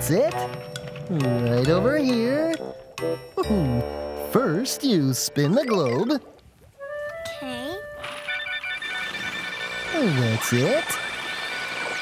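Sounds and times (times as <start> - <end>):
high electronic trilling tones: 5.4 - 6.2, 8.0 - 12.0.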